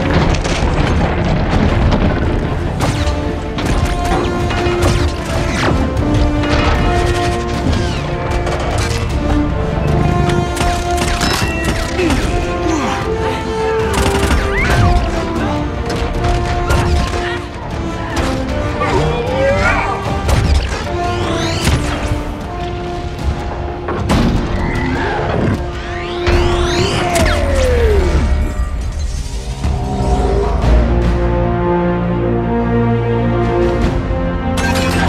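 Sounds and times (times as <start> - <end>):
dramatic orchestral score: 0.0 - 35.0.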